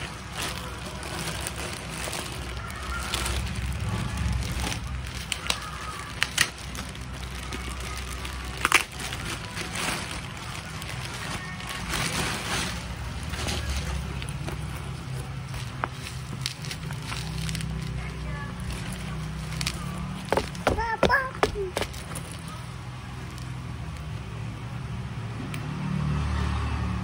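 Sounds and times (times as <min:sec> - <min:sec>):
fabric bag rustling: 0:00.0 - 0:22.6
plastic wrapping rustling: 0:00.0 - 0:23.6
low motor rumble: 0:00.0 - 0:25.1.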